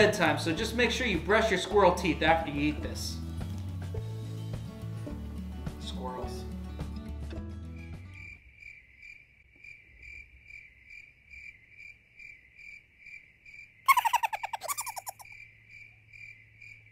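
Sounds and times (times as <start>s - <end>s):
cricket chirping: 8.2s - 16.9s
squirrel chattering: 13.9s - 15.3s.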